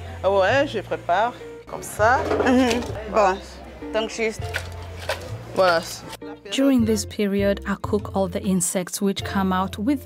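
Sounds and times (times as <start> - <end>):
metal pot being handled: 2.2 - 3.0, 4.5 - 5.9.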